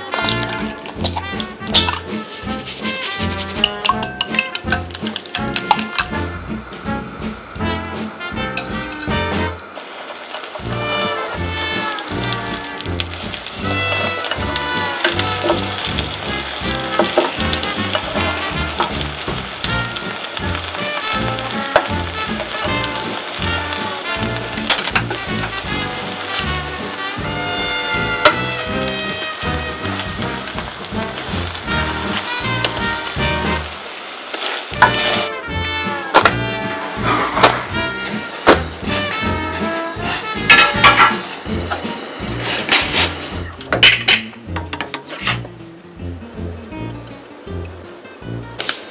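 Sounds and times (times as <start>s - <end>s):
background music with bass line: 0.0s - 9.6s, 34.8s - 48.6s
egg sizzling in a pan: 0.0s - 46.1s.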